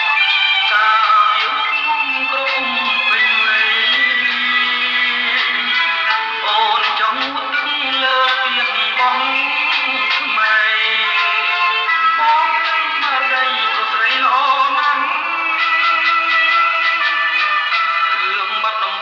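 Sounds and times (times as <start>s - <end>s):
man singing pop song: 0.0s - 19.0s.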